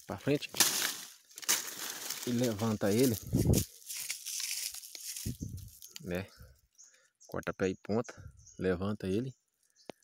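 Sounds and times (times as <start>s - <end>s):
leaves and vine stems rustling: 0.0s - 6.8s.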